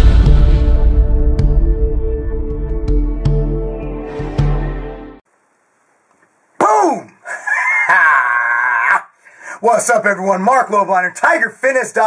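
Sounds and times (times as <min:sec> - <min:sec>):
intro music: 0:00.0 - 0:05.2.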